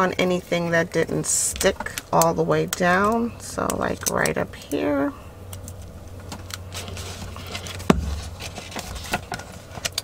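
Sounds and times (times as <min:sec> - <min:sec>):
steady low hum: 0:00.0 - 0:10.0
paper rustling and rubbing: 0:06.6 - 0:10.0.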